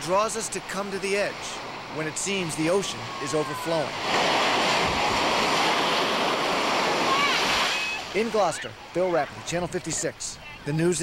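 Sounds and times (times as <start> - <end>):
storm surf breaking on rocks: 2.1 - 10.0.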